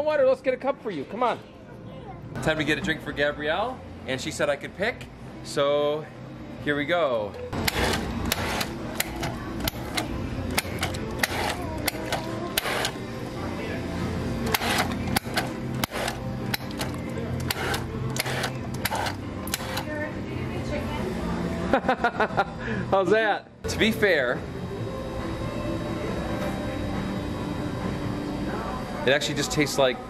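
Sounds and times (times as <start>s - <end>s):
steady background hum: 0.0s - 30.0s.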